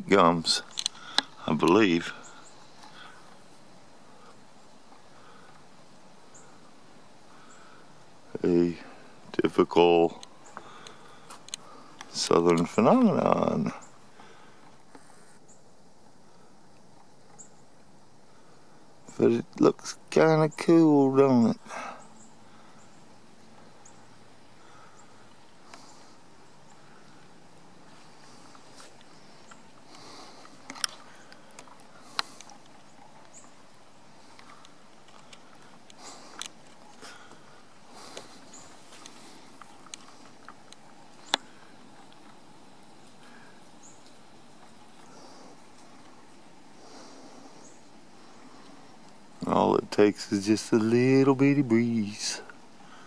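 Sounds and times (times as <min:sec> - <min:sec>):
steady low hiss: 0:00.0 - 0:53.0
sharp clicks: 0:00.6 - 0:01.8.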